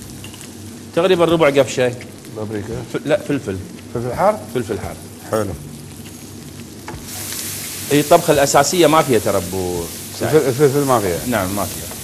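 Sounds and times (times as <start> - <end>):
spices sizzling in hot oil: 0.0 - 12.0.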